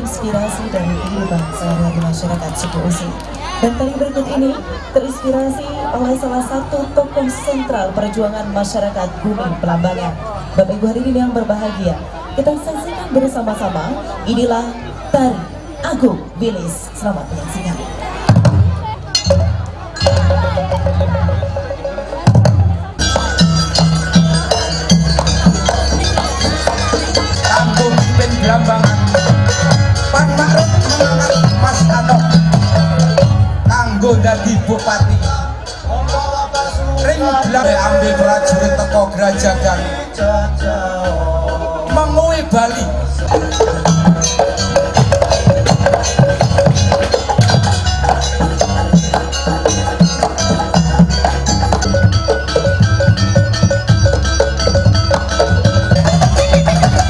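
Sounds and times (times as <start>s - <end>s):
drums and percussion dance music: 0.0s - 57.0s
gamelan ensemble playing: 11.7s - 57.0s.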